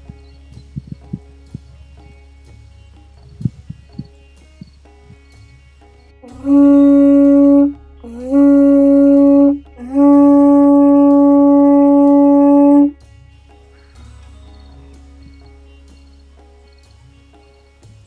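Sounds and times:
conch shell blasts: 6.2 - 13.0.

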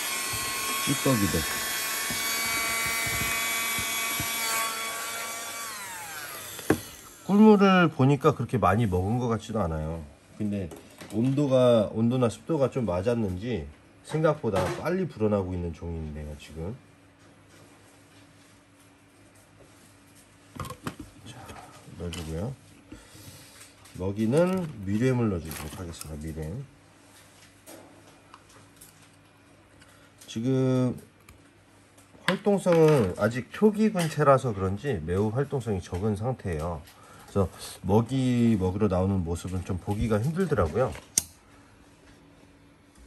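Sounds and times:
handheld vacuum motor whine: 0.0 - 7.6.

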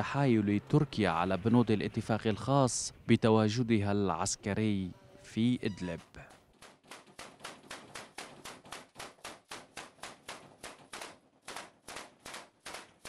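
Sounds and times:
rapid gunfire: 6.6 - 13.0.

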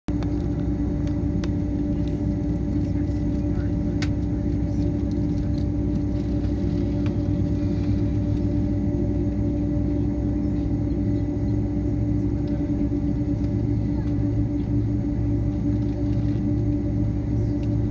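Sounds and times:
jet engines idling: 0.1 - 17.9.

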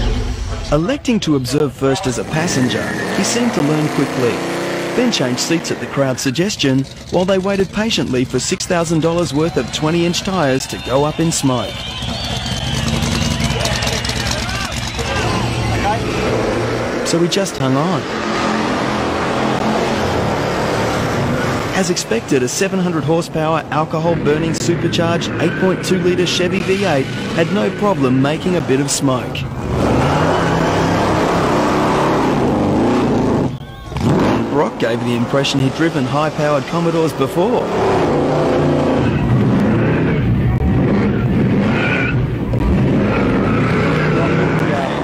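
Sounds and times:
people's voices: 0.0 - 18.6, 20.2 - 31.4, 33.4 - 45.0
engine running at low revs: 2.2 - 45.0.

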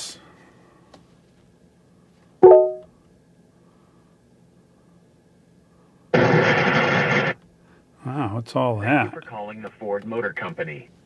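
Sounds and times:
infotainment chime: 2.4 - 2.8
music over phone line: 2.4 - 2.8.

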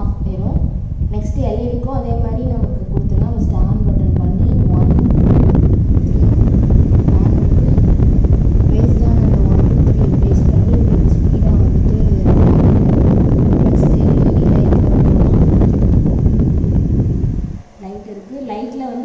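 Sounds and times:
fan wind rumble on microphone: 0.0 - 19.0.

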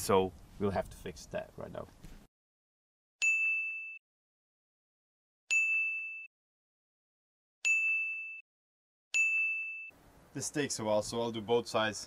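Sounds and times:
bright bell-like ding: 3.2 - 4.0, 5.5 - 6.3, 7.6 - 8.4, 9.2 - 9.9.

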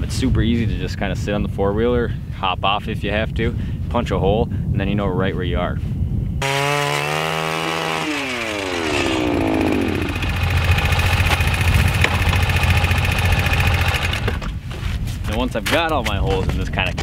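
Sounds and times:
ice auger engine drilling: 6.4 - 14.6.

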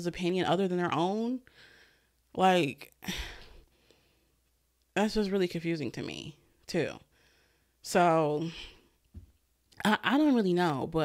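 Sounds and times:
woman sighing: 3.0 - 3.6.

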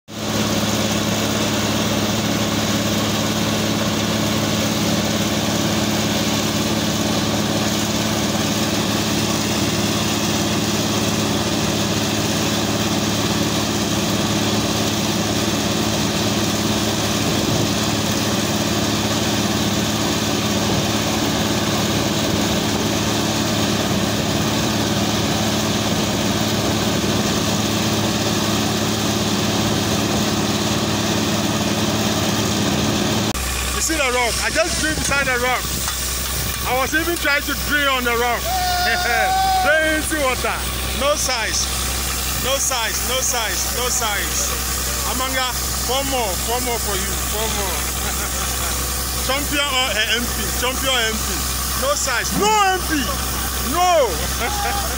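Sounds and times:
drilling rig engine drone: 0.1 - 54.9
water spraying rushing noise: 0.2 - 32.5, 33.3 - 54.9.

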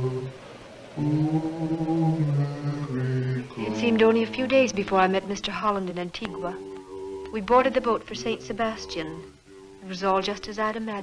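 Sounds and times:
men chanting mournful melody: 0.0 - 10.6
woman speaking: 3.6 - 6.7, 7.3 - 11.0.

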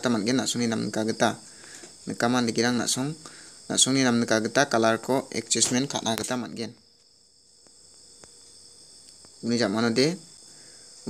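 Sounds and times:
man speaking: 0.0 - 6.8, 9.4 - 10.3
faint high-pitched whine: 0.0 - 11.0.

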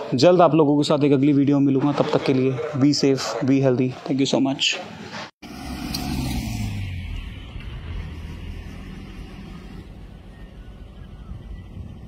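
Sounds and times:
car engines running: 5.1 - 12.0.

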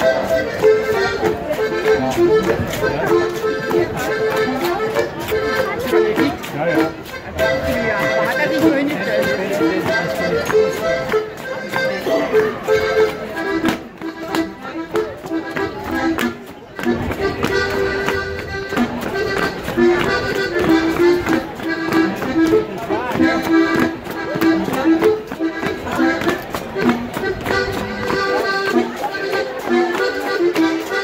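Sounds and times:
accordion folk dance tune: 0.0 - 31.0.

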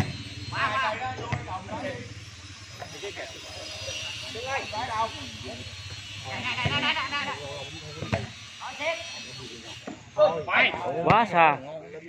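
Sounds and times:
volleyball being struck: 0.0 - 0.3, 1.1 - 1.7, 5.9 - 7.0, 8.0 - 8.3
people shouting: 0.0 - 2.0, 6.2 - 8.2.

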